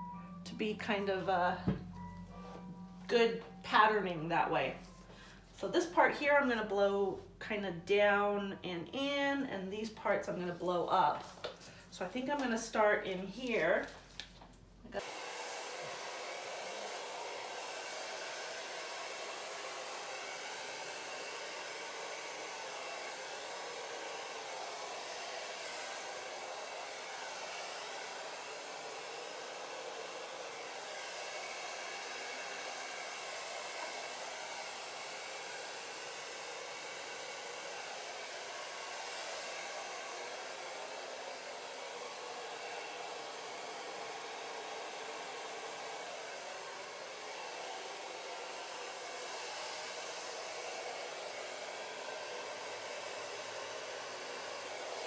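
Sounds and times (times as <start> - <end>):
hair dryer running: 0.0 - 6.0, 9.8 - 55.0.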